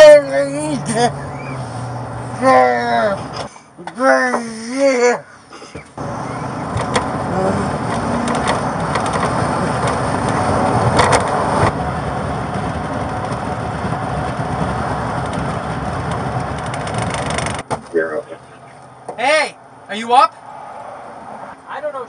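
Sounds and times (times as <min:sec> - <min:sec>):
road and engine noise inside car: 0:00.0 - 0:22.0.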